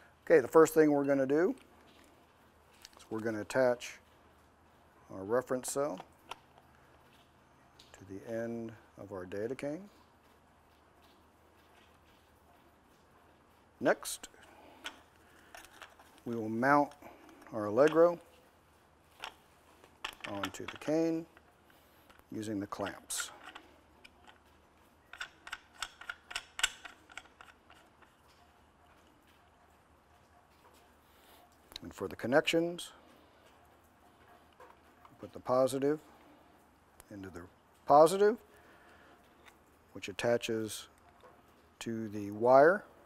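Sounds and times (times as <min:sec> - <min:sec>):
mount clamps clicking shut: 0:25.1 - 0:27.9.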